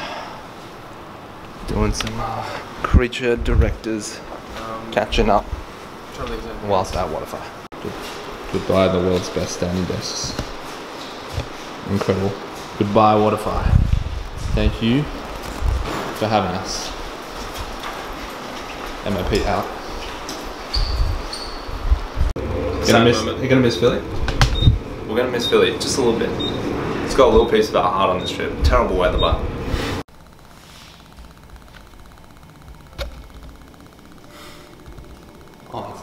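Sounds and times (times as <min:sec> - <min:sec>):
handheld camera rustle: 0:15.2 - 0:15.9.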